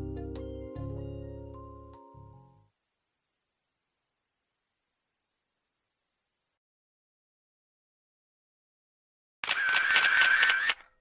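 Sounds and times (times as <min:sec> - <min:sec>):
camera shutter burst: 0:09.4 - 0:11.0.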